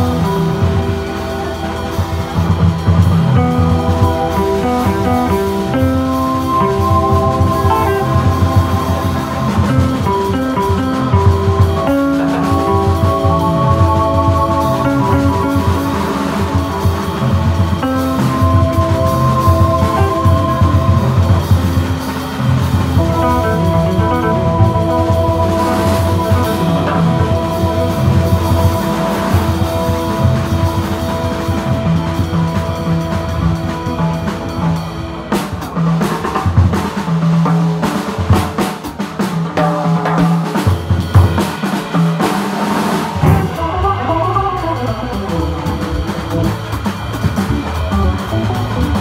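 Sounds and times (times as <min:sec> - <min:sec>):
low bass notes: 0:00.0 - 0:38.4, 0:40.6 - 0:49.0
drum kit: 0:00.0 - 0:49.0
electric guitar: 0:00.0 - 0:49.0
organ chords: 0:00.0 - 0:49.0.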